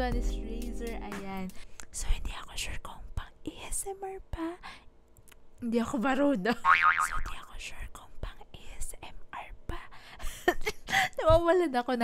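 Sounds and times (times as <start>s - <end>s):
woman whispering: 1.9s - 4.8s, 7.3s - 10.0s
woman laughing: 10.2s - 11.3s.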